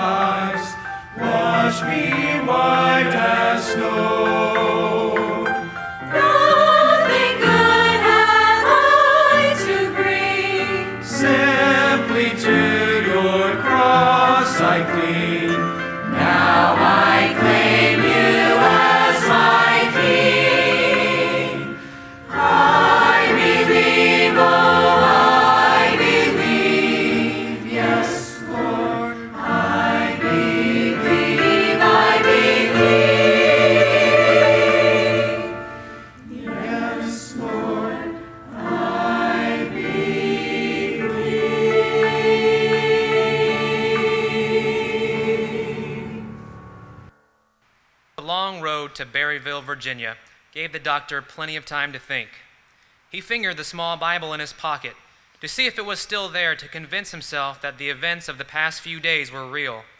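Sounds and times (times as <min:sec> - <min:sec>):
church choir singing: 0:00.0 - 0:47.1.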